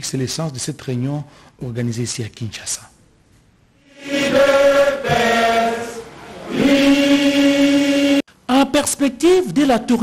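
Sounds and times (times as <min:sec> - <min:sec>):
group chanting in unison: 0:03.8 - 0:08.2.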